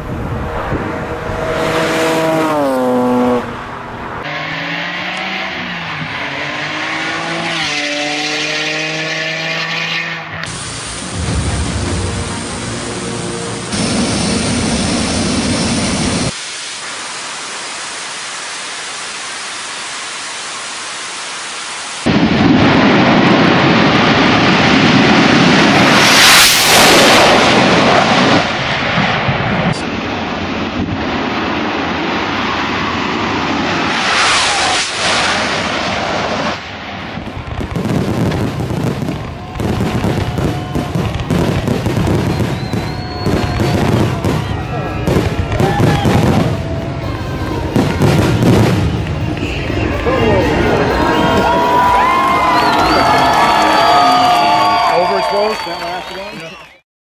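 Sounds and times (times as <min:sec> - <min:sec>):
racing cars roaring past: 0:00.0 - 0:10.5, 0:44.5 - 0:54.5
fireworks bangs and crackles: 0:10.4 - 0:17.1, 0:22.0 - 0:56.7
whistling firework shells: 0:37.2 - 0:56.8.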